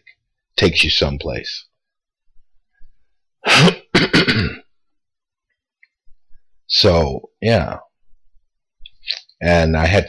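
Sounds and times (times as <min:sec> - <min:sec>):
man clearing his throat: 0:03.4 - 0:04.7.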